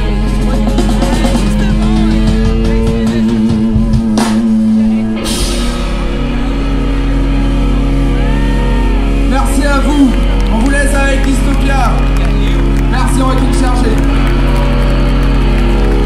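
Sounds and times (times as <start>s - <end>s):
drum and cymbal hit: 0.0s - 8.2s
distorted electric guitar: 0.0s - 16.0s
drum kit: 0.0s - 16.0s.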